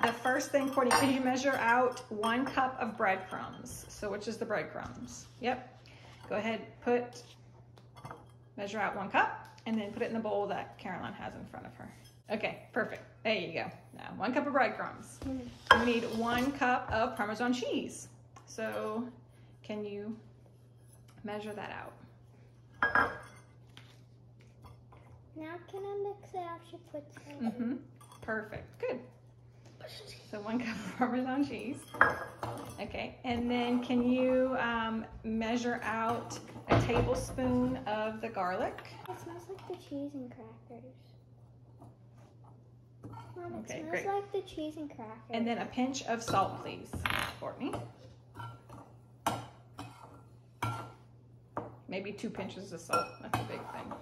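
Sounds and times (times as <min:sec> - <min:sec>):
metal spoon clinking glass bowl: 0:00.0 - 0:03.8.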